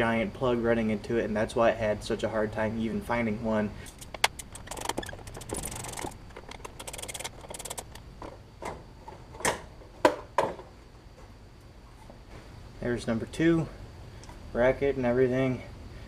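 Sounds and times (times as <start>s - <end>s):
tools and plastic parts clicking: 3.9s - 8.1s.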